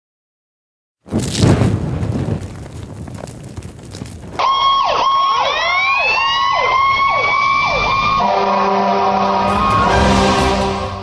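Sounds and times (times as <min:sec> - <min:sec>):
explosion: 0:01.1 - 0:04.4
emergency vehicle sirens wailing: 0:04.4 - 0:11.0
steady high tone: 0:08.2 - 0:11.0
music: 0:09.2 - 0:11.0.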